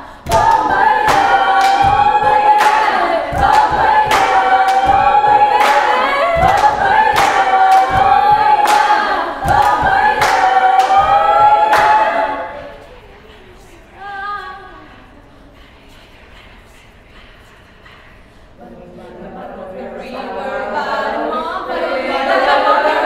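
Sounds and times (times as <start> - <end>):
female choir singing: 0.0 - 17.5, 18.6 - 23.0
hand claps: 0.3 - 12.4.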